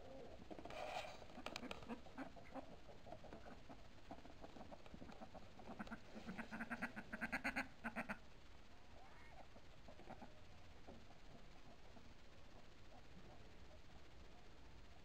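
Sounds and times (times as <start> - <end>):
ducks quacking: 1.3 - 8.2, 9.1 - 10.4.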